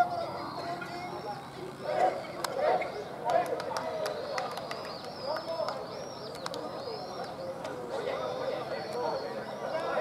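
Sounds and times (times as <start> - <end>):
men chatting: 0.0 - 10.0.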